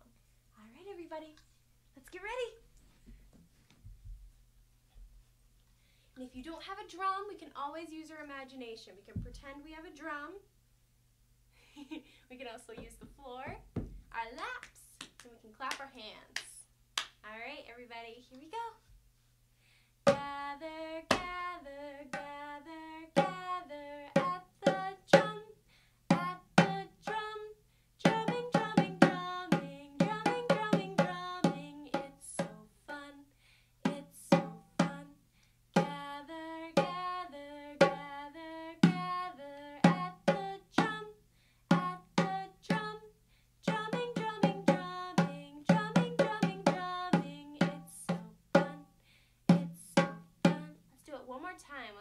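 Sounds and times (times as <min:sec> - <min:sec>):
woman singing: 0:20.1 - 0:35.2, 0:35.8 - 0:48.9, 0:49.5 - 0:51.2
hand drum beating: 0:28.1 - 0:32.1, 0:43.7 - 0:47.9.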